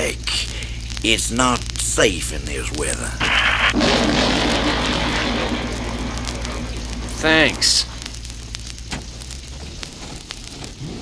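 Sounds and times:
hissy burst: 0:00.0 - 0:11.0
record low hum: 0:00.0 - 0:11.0
wash of noise: 0:03.2 - 0:08.2.

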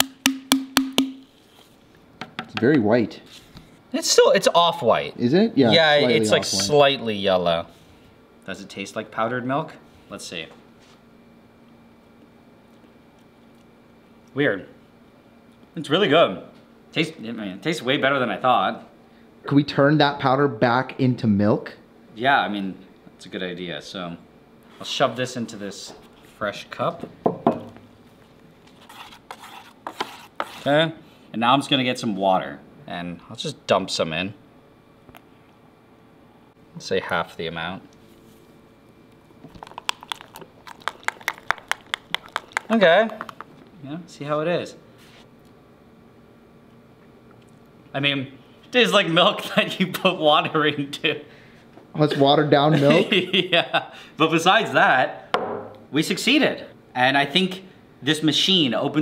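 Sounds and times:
wood block hits: 0:00.0 - 0:01.2, 0:55.4 - 0:55.8.

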